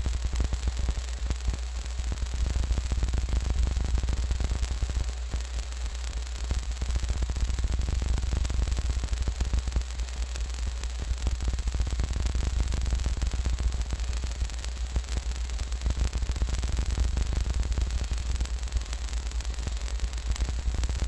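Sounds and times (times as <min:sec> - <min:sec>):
dense crackling noise: 0:00.0 - 0:21.0
steady low hum: 0:00.0 - 0:21.0.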